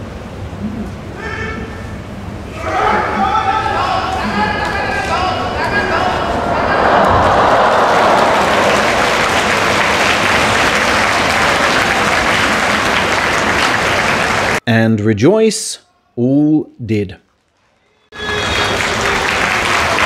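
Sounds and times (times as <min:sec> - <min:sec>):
crowd shouting: 0:02.6 - 0:14.6
applause and cheering: 0:04.4 - 0:14.6, 0:18.1 - 0:20.0.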